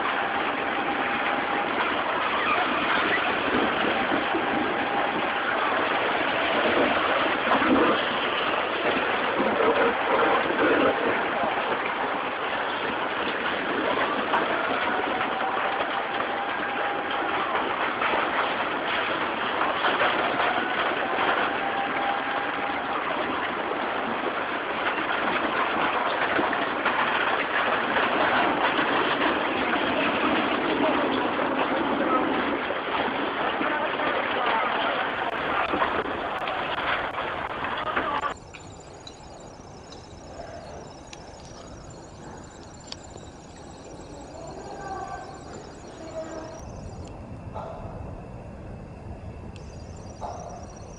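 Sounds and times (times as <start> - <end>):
debris crackling and crashing: 0.0 - 47.6, 48.2 - 50.9
floodwater rushing: 35.0 - 47.1.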